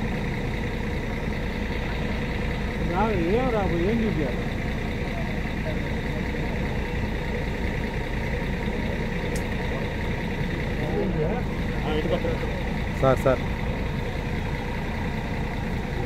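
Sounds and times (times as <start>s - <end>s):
engine rumble: 0.0s - 16.0s
faint voices: 1.7s - 16.0s.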